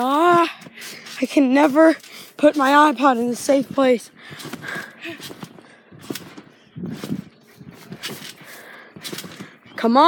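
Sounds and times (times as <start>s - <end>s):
feet bouncing on trampoline: 0.0s - 10.0s.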